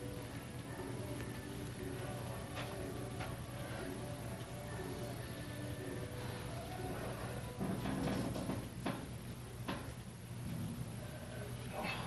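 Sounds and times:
faint background music: 0.0 - 12.0
steady low hum: 0.0 - 12.0.

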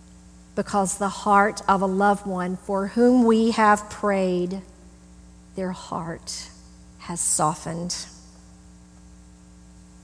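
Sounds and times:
microphone low hum with hiss: 0.0 - 10.0.

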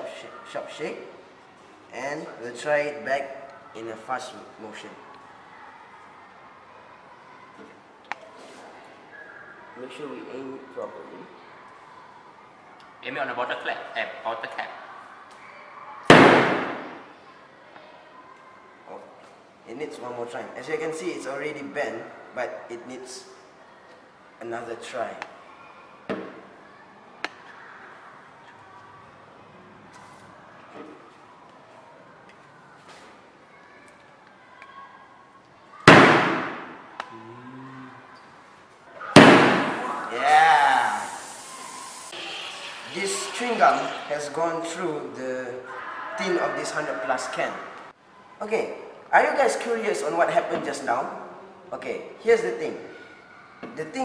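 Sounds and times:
fizzy drink hissing out: 39.6 - 44.4.

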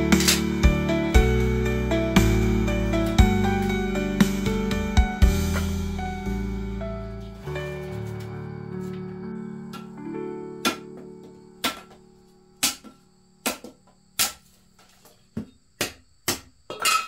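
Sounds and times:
soft background music: 0.0 - 13.4
machete chopping wooden sticks: 11.6 - 12.0, 12.6 - 14.5, 15.4 - 17.0.

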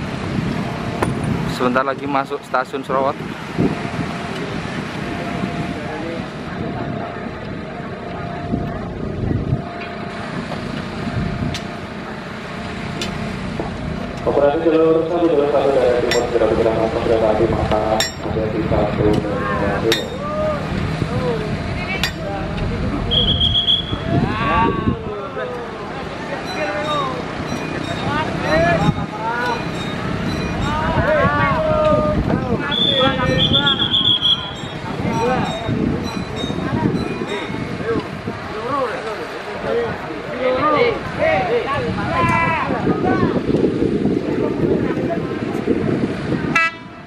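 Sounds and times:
workers talking: 0.1 - 47.0
high whistle: 23.1 - 24.1, 32.6 - 34.9.

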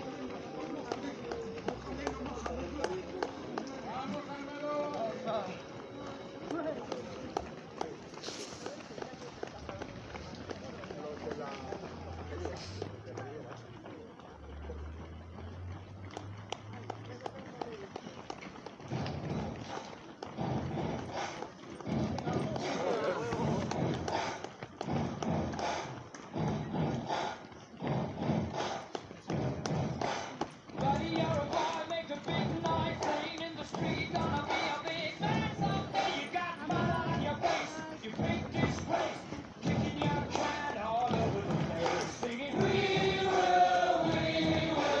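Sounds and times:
indistinct voices: 0.0 - 45.0
runners' footsteps on asphalt: 0.0 - 45.0
music with singing: 29.8 - 45.0.

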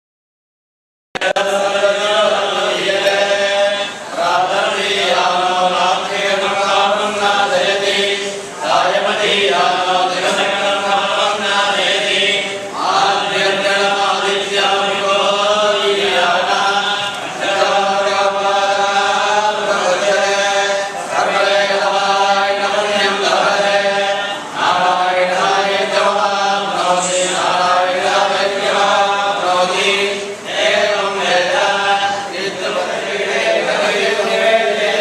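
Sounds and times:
men chanting in unison: 1.2 - 35.0.

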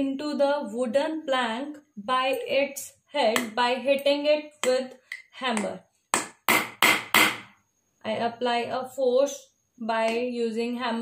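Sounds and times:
hammer striking a nail: 6.1 - 7.6.

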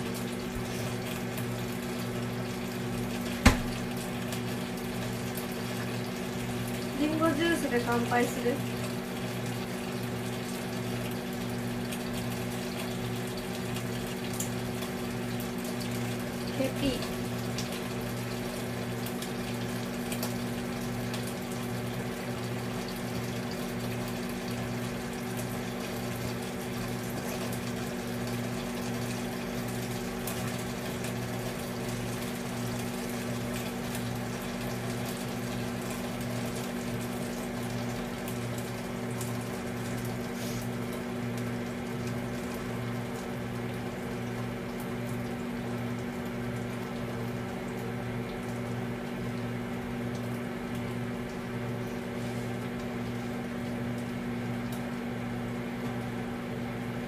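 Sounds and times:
machine hum: 0.0 - 20.5.

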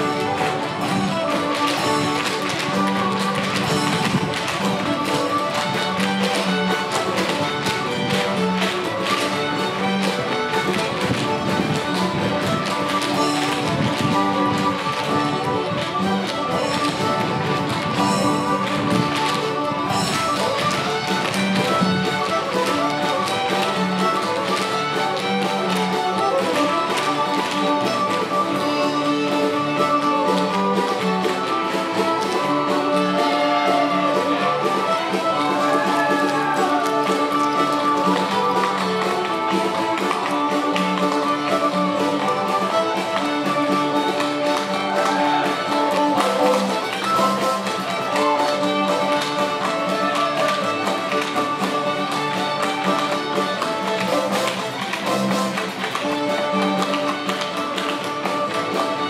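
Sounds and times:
dancers' feet tapping on wooden stage: 0.0 - 59.0
fiddles and guitar playing folk tune: 0.0 - 59.0.

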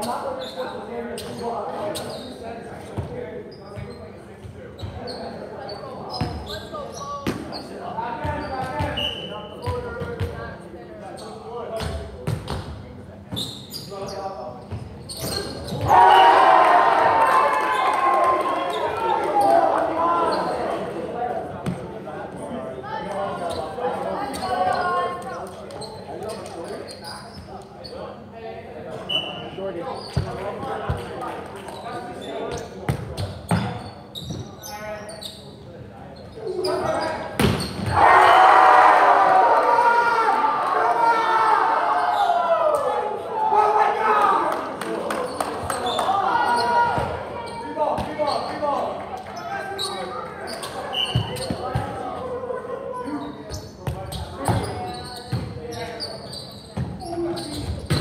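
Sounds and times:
people shouting and cheering: 15.8 - 20.6, 37.9 - 45.2.

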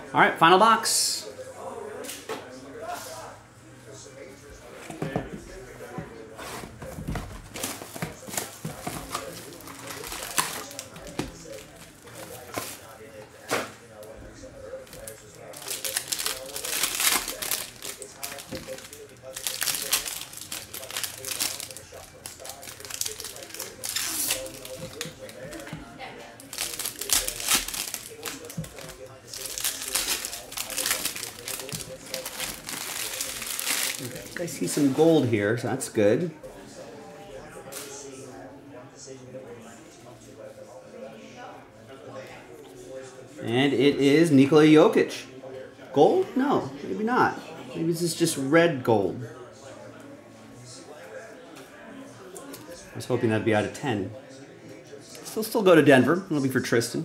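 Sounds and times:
foil wrappers crinkling and tearing: 7.5 - 12.9, 14.8 - 25.7, 26.4 - 34.8.

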